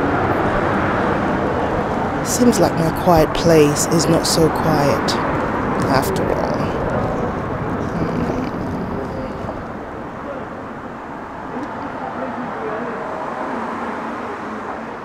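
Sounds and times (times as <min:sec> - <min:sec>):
indistinct voices: 0:00.0 - 0:15.0
traffic noise: 0:00.0 - 0:15.0.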